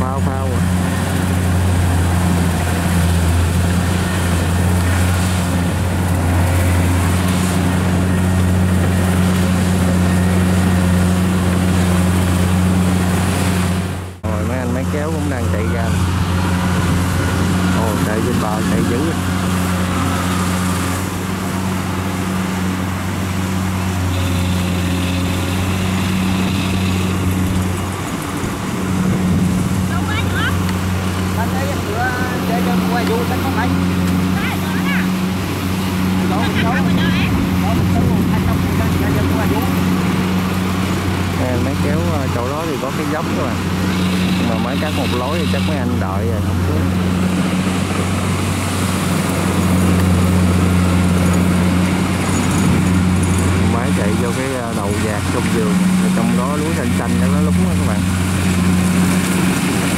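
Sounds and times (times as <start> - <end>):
combine harvester diesel engine: 0.0 - 59.9
steady engine running: 0.0 - 59.9.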